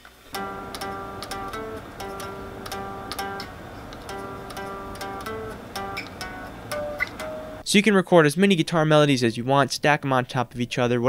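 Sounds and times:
electric guitar lead melody: 0:00.3 - 0:07.6.

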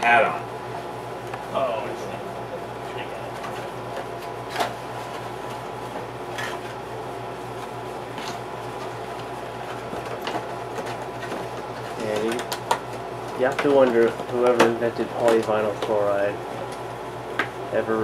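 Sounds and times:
machine hum: 0:00.0 - 0:18.0.

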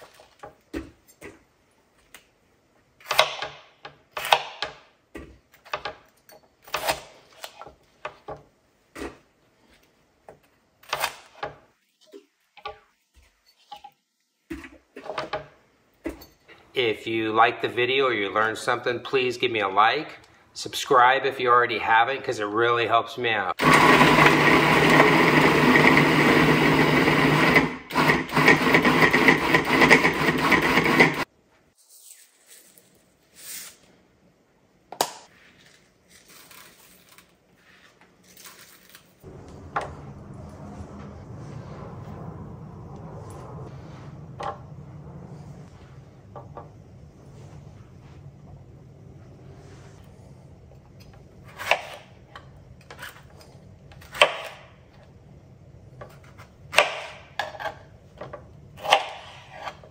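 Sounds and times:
food processor chopping vegetables: 0:23.6 - 0:31.2.

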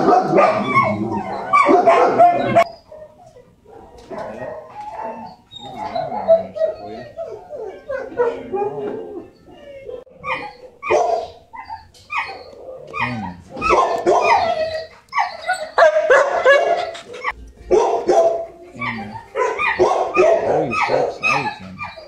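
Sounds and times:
dogs barking and yipping: 0:00.0 - 0:22.0.

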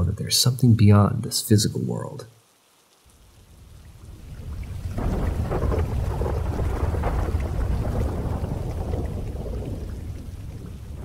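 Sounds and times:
falling rain: 0:00.0 - 0:11.0
rolling thunder: 0:04.1 - 0:11.0.

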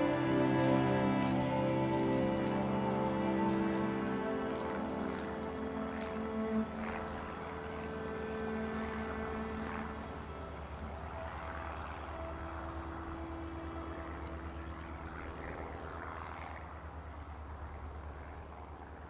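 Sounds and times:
held music notes: 0:00.0 - 0:15.9
small plane engine droning: 0:00.0 - 0:19.0.

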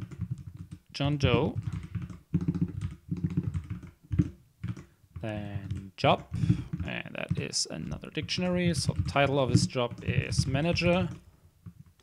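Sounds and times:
typing on a keyboard: 0:00.0 - 0:12.0.

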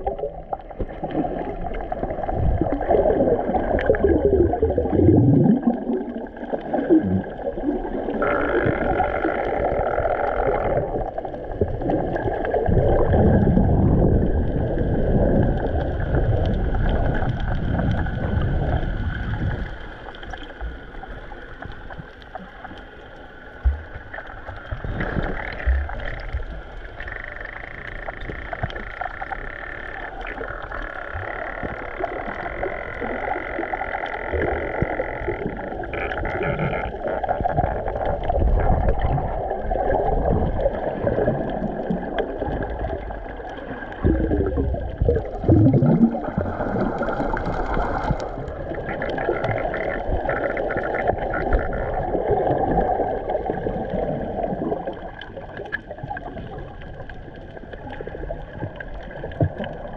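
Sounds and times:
low underwater gurgling: 0:00.0 - 0:59.9
underwater water rushing and bubbling: 0:00.0 - 0:59.9.

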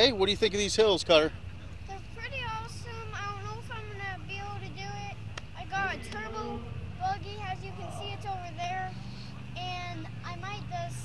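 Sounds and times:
young child talking: 0:01.8 - 0:11.0.

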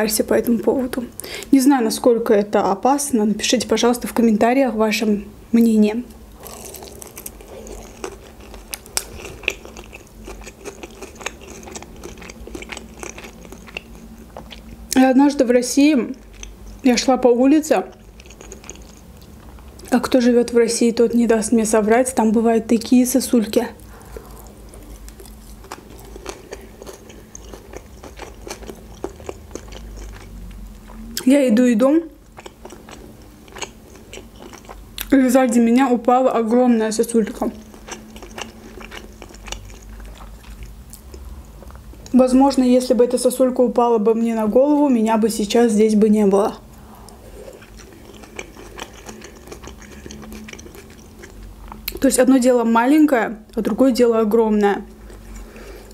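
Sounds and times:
chewing with crisp crunches: 0:06.4 - 0:15.0, 0:16.0 - 0:20.0, 0:23.8 - 0:31.3, 0:32.2 - 0:35.2, 0:37.1 - 0:42.2, 0:46.6 - 0:52.1, 0:54.8 - 0:55.9.

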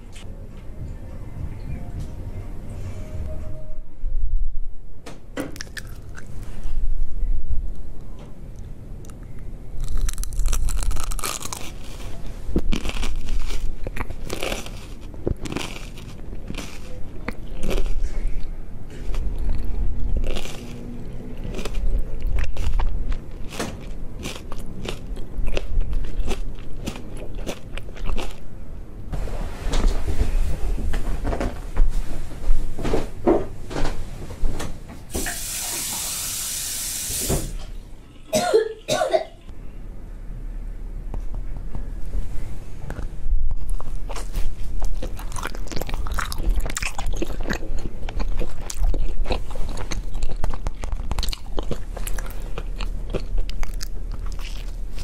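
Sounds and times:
wet mouth sounds: 0:05.6 - 0:06.4
chewing crunchy pepper: 0:05.6 - 0:06.6, 0:09.0 - 0:28.5, 0:42.9 - 0:55.0
loud hiss: 0:35.2 - 0:37.6.

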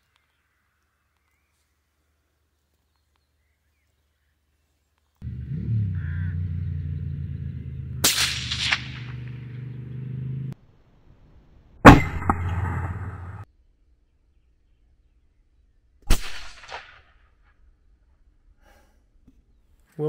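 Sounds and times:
steady low drone: 0:05.2 - 0:10.6, 0:11.8 - 0:13.5
rifle shots: 0:08.0 - 0:09.6, 0:11.9 - 0:13.5, 0:16.1 - 0:17.1.

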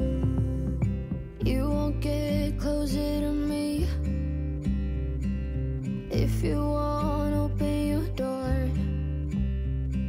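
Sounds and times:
song with strummed acoustic guitar: 0:00.0 - 0:10.0.

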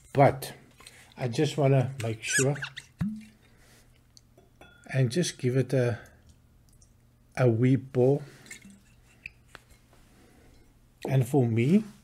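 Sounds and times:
faint bottle and glass clicks: 0:04.2 - 0:04.9.

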